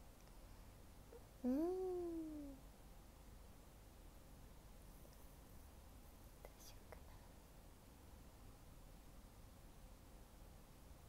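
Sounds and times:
soft breathy sound: 0.3 - 2.6.

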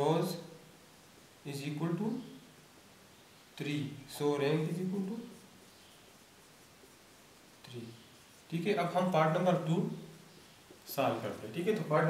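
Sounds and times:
marker scratching on whiteboard: 4.6 - 9.7.

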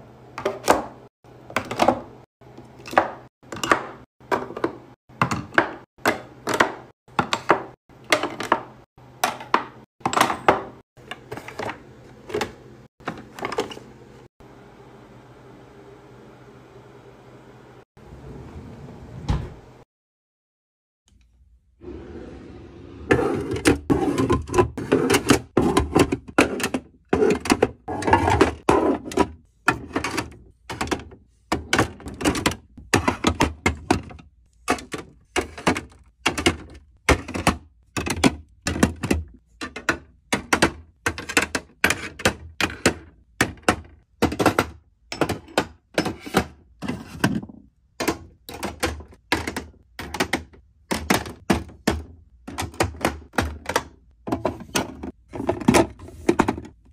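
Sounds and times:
drawer sliding shut: 19.1 - 19.7, 21.8 - 31.0
jars and bottles clacking: 23.4 - 56.8.

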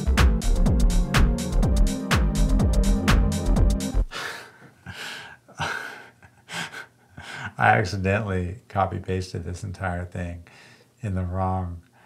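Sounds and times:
man laughing: 4.9 - 7.7.

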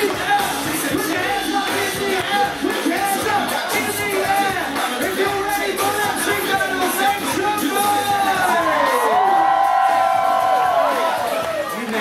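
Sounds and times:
amplified music: 0.0 - 12.0
crowd cheering and whooping: 7.2 - 12.0.

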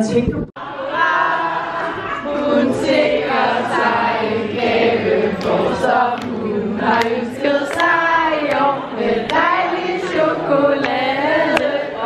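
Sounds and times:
women singing together: 0.6 - 12.0.

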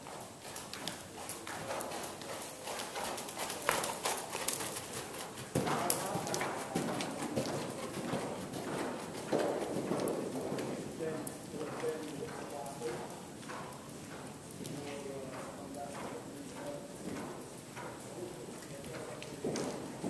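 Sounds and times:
horse hoofbeats on sand: 0.0 - 20.0.

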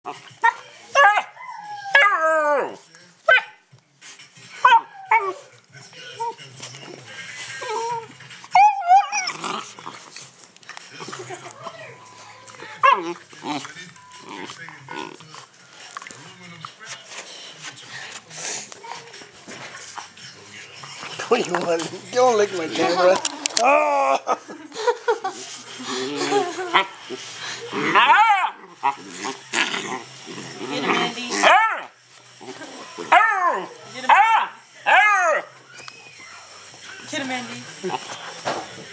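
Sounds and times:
puppy growling: 7.5 - 11.5, 12.3 - 16.0, 25.8 - 35.6
puppy crying: 7.6 - 9.6, 11.6 - 13.6, 27.8 - 29.5, 30.7 - 31.9, 32.5 - 36.2
puppy yelping and baying: 8.5 - 9.4, 28.0 - 29.0.

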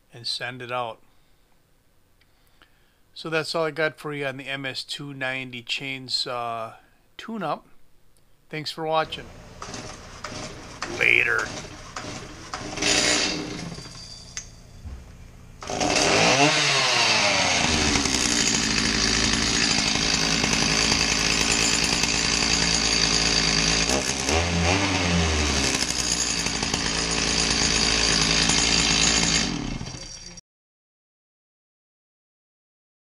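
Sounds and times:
chainsaw engine revving: 9.0 - 14.0, 15.6 - 30.0.

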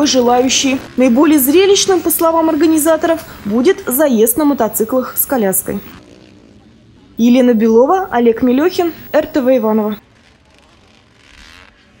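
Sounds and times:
distant motorbike engine revving: 0.0 - 12.0.

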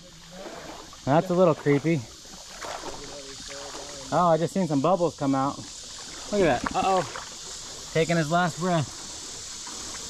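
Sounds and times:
creek water lapping and sloshing: 0.0 - 10.0.

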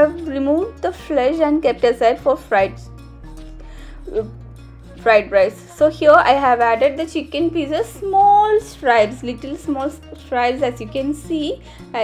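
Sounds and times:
background music with low notes: 0.0 - 12.0.

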